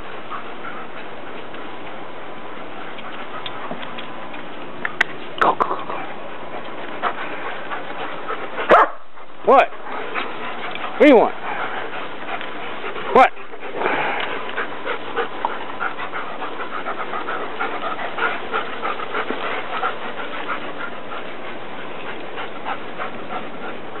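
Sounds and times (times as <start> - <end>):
dogs panting and scuffling: 0.0 - 24.0
dog barking: 8.7 - 9.0.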